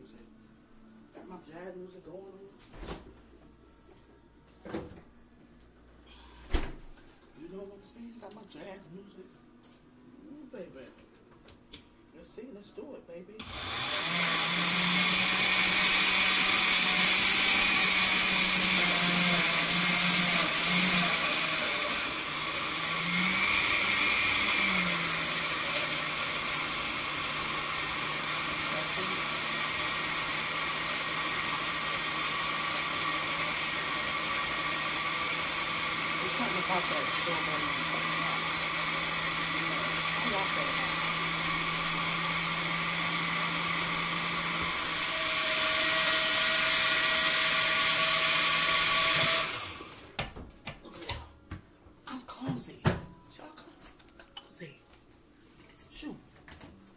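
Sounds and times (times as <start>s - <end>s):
countertop blender running: 13.4s - 50.1s.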